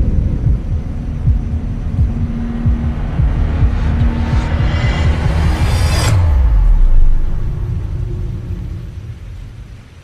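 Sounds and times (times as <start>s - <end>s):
deep rumbling boom: 0.0s - 10.0s.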